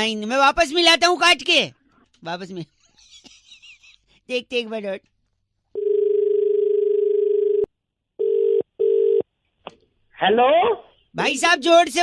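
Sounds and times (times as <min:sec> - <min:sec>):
telephone dial tone: 0:05.8 - 0:09.2.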